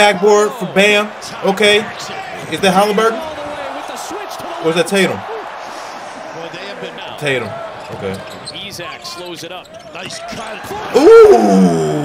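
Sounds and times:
commentator talking: 0.0 - 5.3, 6.3 - 11.4.

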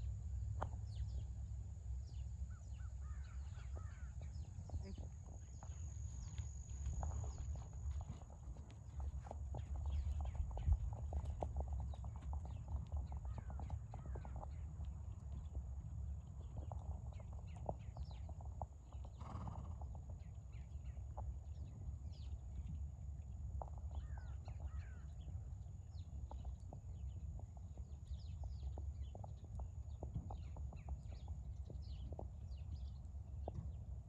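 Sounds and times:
steady low rumble: 0.0 - 34.0
birds chirping: 0.6 - 33.8
horse hoofbeats on dirt: 2.0 - 34.0.

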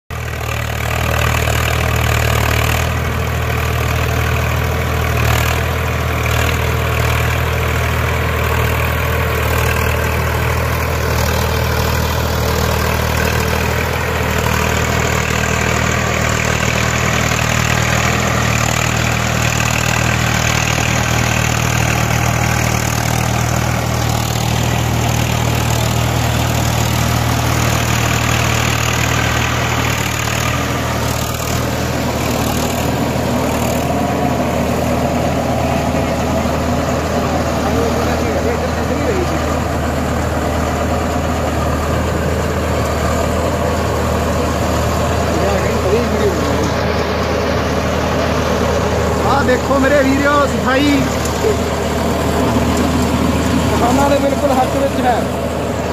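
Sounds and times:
diesel tractor engine under load: 0.1 - 55.9
rotor churning straw and soil: 0.1 - 55.9.

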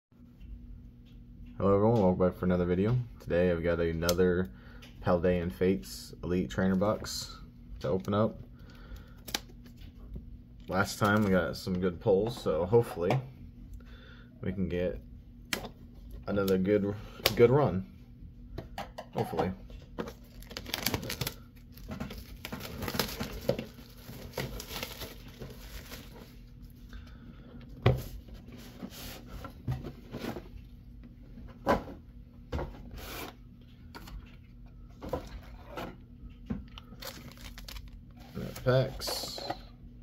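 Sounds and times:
plastic shrink wrap tearing: 20.1 - 26.3, 36.8 - 38.6.

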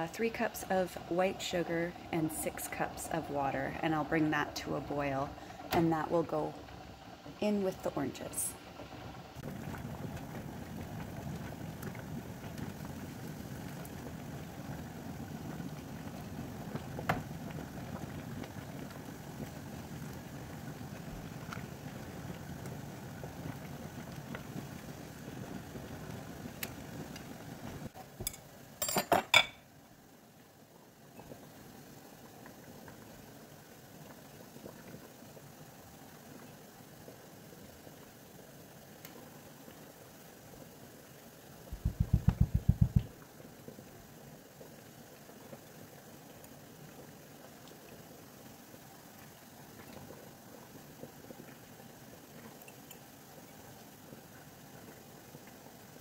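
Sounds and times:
water boiling in a pot: 0.0 - 56.0
glass jars clinking: 28.8 - 29.6.

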